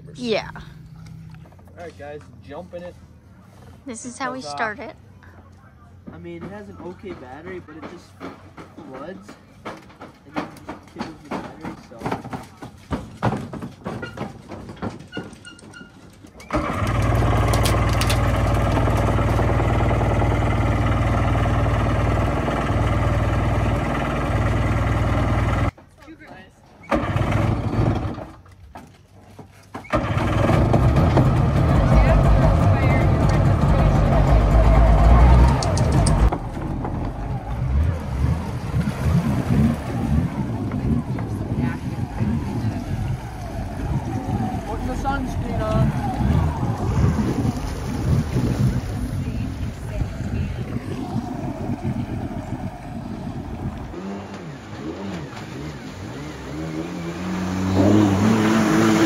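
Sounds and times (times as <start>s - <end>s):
jet ski engine running: 16.5s - 25.7s, 29.9s - 59.0s.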